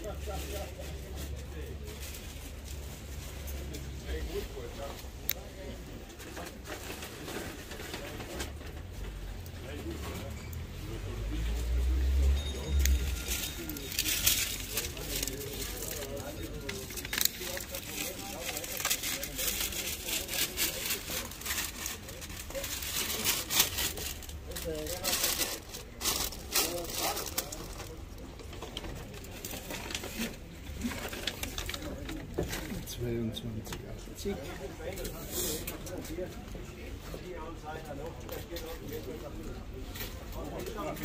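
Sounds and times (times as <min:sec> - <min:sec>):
market bustle: 0:00.0 - 0:41.0
handling clicks and rustles: 0:12.7 - 0:32.9.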